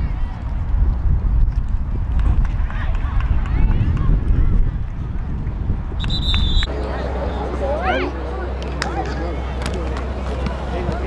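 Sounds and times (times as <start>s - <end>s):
wind rumbling on microphone: 0.0s - 6.7s
referee whistle blast: 6.0s - 6.7s.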